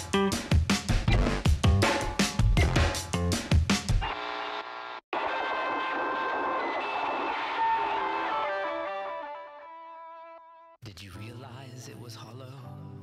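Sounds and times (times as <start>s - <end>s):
drums: 0.0s - 4.1s
electric guitar with effects: 7.6s - 10.7s.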